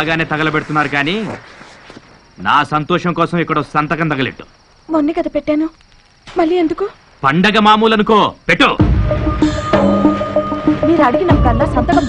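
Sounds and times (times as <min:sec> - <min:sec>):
cricket trill: 0:00.0 - 0:12.0.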